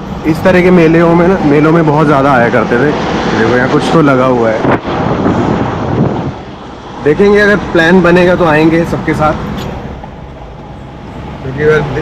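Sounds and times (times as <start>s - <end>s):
car road noise: 0.0s - 12.0s.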